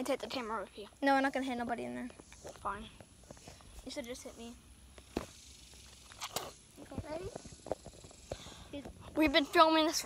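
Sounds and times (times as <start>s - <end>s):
children talking: 0.0s - 4.7s, 6.7s - 7.8s, 8.5s - 10.0s.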